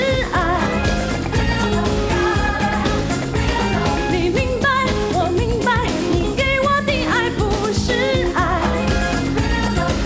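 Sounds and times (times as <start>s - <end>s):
dance-pop backing track: 0.0s - 10.0s
woman singing pop song: 0.0s - 10.0s.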